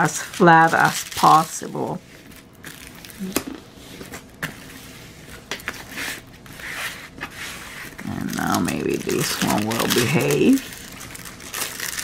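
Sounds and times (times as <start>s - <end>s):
rustling and scraping of plastic: 0.0s - 12.0s.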